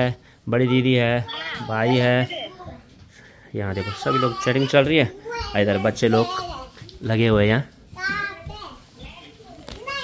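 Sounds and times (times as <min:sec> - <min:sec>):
children's voices: 0:00.6 - 0:07.0, 0:07.8 - 0:10.0.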